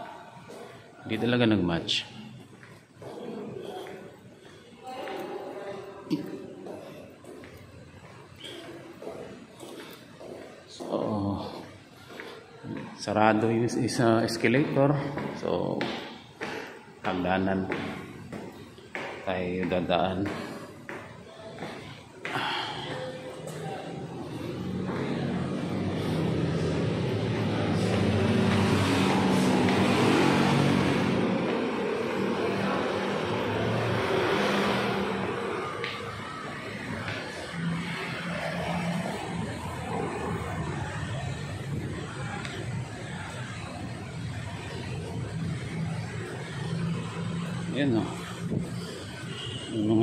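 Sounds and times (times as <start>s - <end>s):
low traffic hum: 0.0s - 50.0s
passing vehicle engine: 21.8s - 50.0s.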